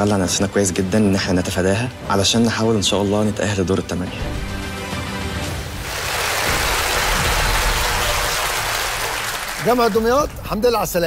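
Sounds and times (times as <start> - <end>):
game-show music with held tones: 0.0 - 11.0
studio audience applause: 5.8 - 10.8.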